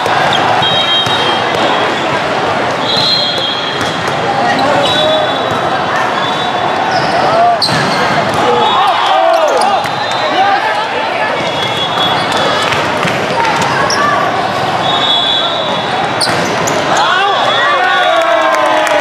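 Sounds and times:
balls hit and bouncing: 0.0s - 1.9s, 3.0s - 4.4s, 7.6s - 8.6s, 11.4s - 13.9s, 16.2s - 17.6s
crowd of voices: 0.0s - 19.0s
referee whistles: 0.3s - 2.1s, 2.8s - 3.8s, 4.6s - 10.6s, 11.4s - 12.4s, 14.8s - 18.3s.

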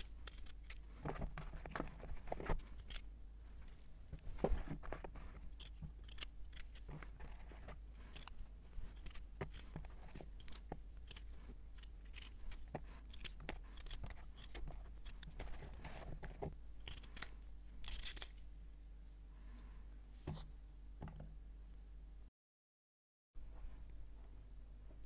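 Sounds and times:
knife cutting potatoes: 0.0s - 3.1s, 4.2s - 18.4s.

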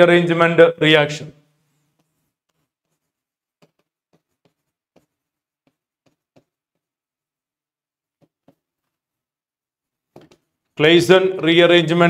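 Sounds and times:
pen strokes on paper: 1.6s - 7.3s.

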